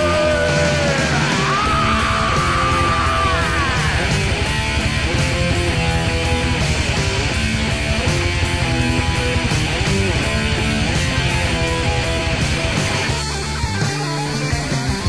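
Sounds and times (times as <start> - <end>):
bass: 0.0 - 15.0
drums with steady beat: 0.0 - 15.0
electric guitar bent notes: 0.0 - 15.0.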